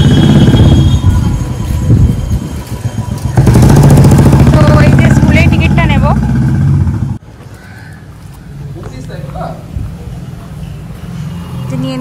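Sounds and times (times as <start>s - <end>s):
motorcycle engine passing: 2.9s - 7.2s.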